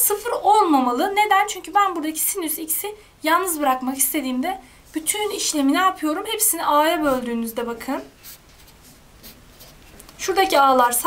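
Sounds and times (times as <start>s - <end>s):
pen scratching on paper: 8.0s - 9.8s.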